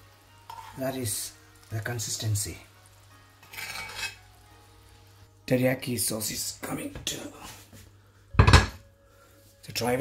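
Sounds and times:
faint sizzle: 0.0 - 10.0
metal spoon scraping skillet: 0.5 - 0.8, 3.4 - 4.3.

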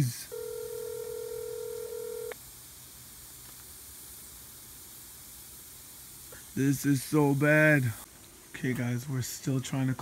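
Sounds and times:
faint hiss: 0.0 - 10.0
phone ringback tone: 0.3 - 2.4.

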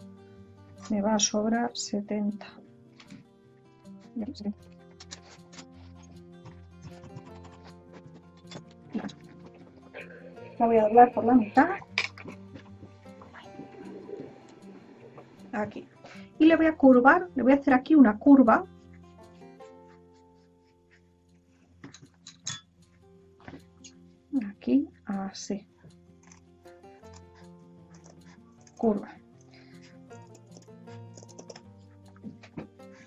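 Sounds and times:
light plucked string music: 0.0 - 33.0.

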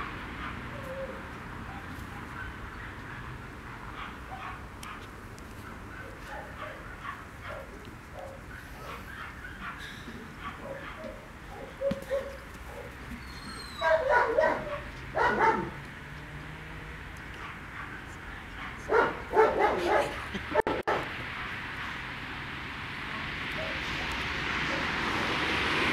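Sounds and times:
dog yelping barks: 0.4 - 5.1, 5.7 - 15.8, 18.6 - 22.0, 23.6 - 23.8
dog yips and whines: 10.6 - 12.4, 13.2 - 15.6.

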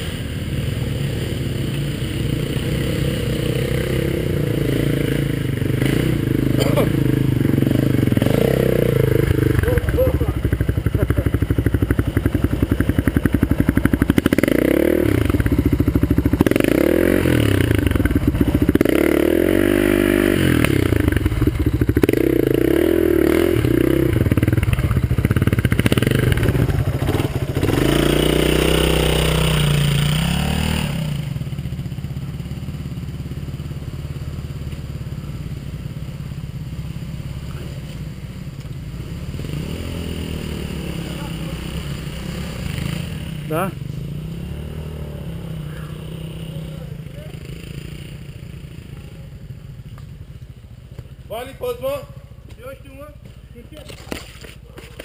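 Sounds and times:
dirt bike engine revving: 0.0 - 31.7, 38.9 - 49.4.

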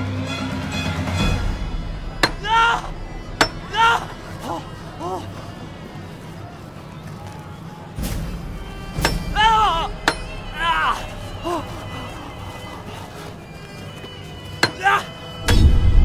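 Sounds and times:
background music: 0.0 - 16.0
sharp knocks: 2.1 - 4.1, 8.0 - 10.4
person crying out: 3.7 - 5.2.

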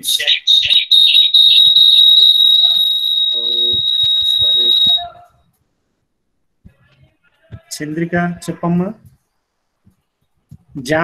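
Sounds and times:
high-pitched whistling tone: 0.3 - 5.1
faint voices: 2.1 - 5.4.

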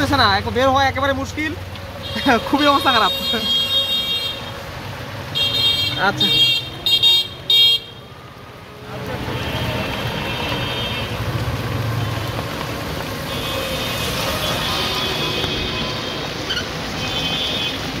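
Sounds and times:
rain hissing: 0.0 - 18.0
tyres on flooded street: 0.0 - 18.0.

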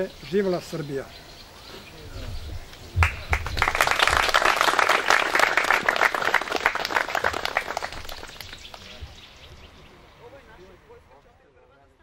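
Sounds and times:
crowd applauding: 3.0 - 9.0.

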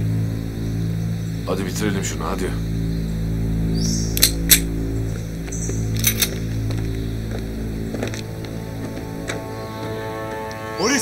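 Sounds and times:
tense background music: 0.0 - 11.0
sharp metallic clicks: 4.1 - 4.7, 5.9 - 6.4.

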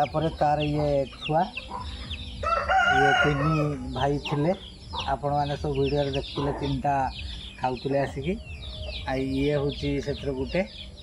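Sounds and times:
rooster crowing: 2.4 - 3.9.

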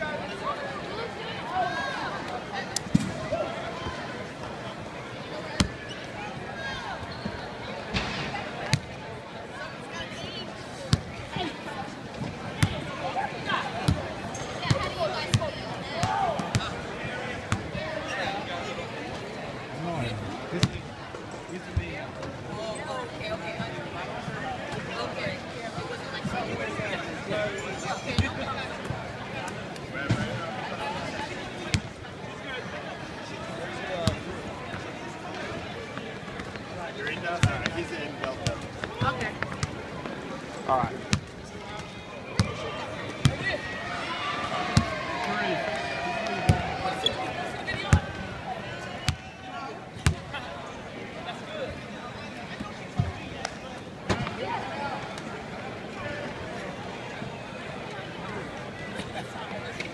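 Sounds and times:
chatter of many people: 0.0 - 59.9.

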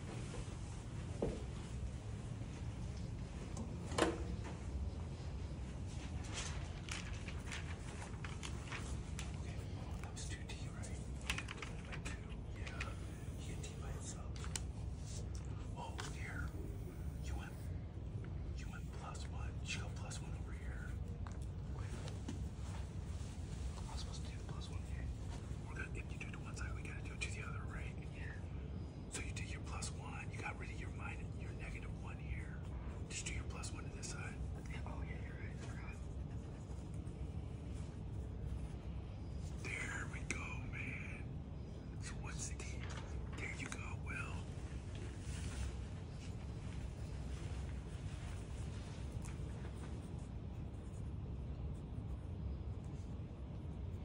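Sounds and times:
low room rumble: 0.0 - 54.0
whispered speech: 0.0 - 54.0.

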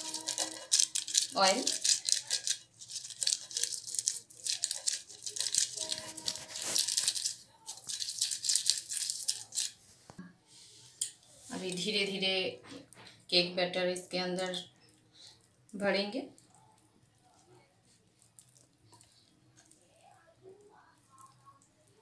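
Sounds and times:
pastry brush stroking cake tin: 0.0 - 11.8.

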